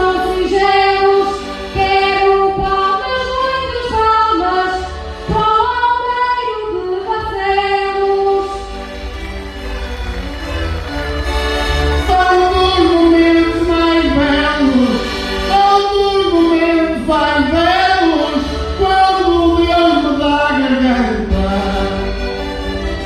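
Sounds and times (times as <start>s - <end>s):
woman singing into microphone: 0.0s - 8.7s, 12.1s - 22.1s
amplified instrumental accompaniment: 0.0s - 23.0s.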